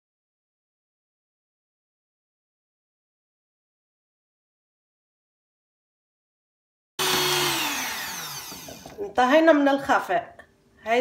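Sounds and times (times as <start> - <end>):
electric hand mixer motor whine: 7.0 - 9.0.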